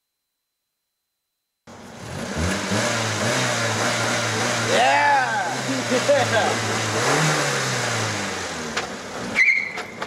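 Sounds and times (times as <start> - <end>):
car engine running: 1.7 - 9.4
young men laughing and cheering: 4.4 - 7.0.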